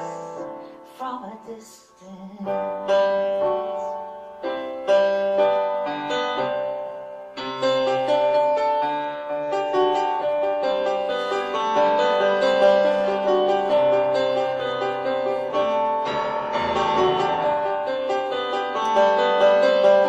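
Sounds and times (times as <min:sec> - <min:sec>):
grand piano chords: 0:00.0 - 0:20.0.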